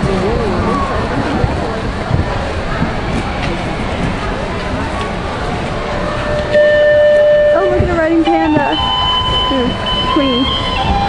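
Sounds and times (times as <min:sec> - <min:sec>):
crowded arena noise: 0:00.0 - 0:11.0
loud steady tone: 0:05.8 - 0:11.0.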